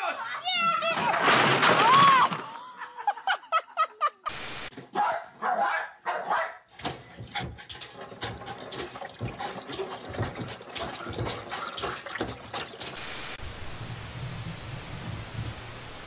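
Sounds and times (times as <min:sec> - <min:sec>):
tap running into sink: 0:06.8 - 0:13.3.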